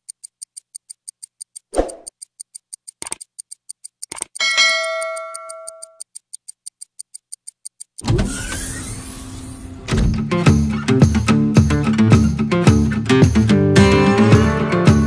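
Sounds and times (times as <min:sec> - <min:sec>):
mouse clicks: 0:00.0 - 0:08.0
clock-like ticking: 0:00.0 - 0:09.1
notification bell ding: 0:04.4 - 0:06.0.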